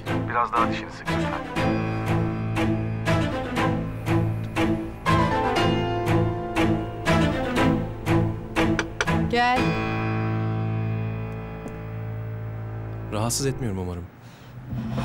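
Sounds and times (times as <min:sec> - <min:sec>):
drama score with bowed strings: 0:00.0 - 0:15.0.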